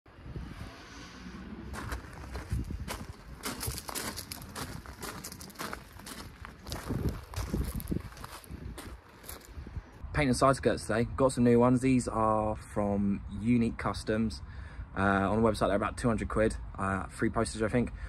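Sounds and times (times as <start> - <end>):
low rumble: 0.1 - 10.1
footsteps on gravel: 1.7 - 9.7.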